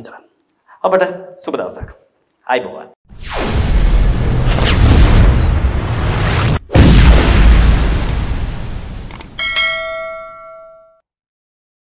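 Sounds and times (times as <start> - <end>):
bell chime strikes: 9.4 - 11.0.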